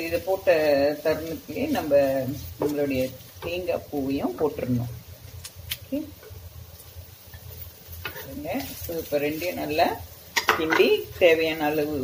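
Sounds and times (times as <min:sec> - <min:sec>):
wooden spatula stirring in a pan: 0:00.0 - 0:05.4, 0:06.1 - 0:12.0
faint sizzle: 0:00.0 - 0:12.0.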